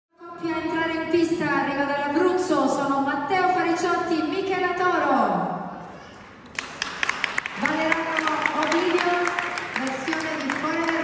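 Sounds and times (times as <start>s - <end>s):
audience applause: 6.5s - 11.0s.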